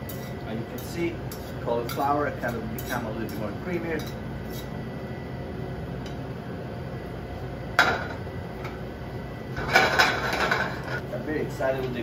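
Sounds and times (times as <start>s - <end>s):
kitchen stove background noise: 0.0s - 12.0s.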